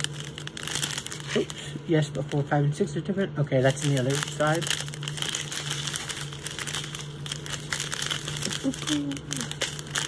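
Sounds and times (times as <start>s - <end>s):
plastic packets crinkling: 0.0s - 10.0s
steady low hum: 0.0s - 10.0s.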